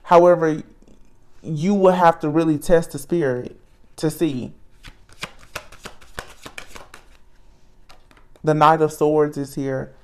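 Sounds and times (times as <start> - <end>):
cards being shuffled: 4.8 - 7.2, 7.9 - 8.5.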